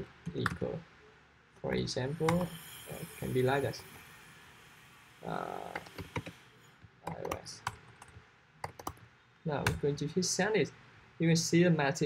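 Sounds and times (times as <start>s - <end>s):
keyboard typing clicks: 7.0s - 9.8s.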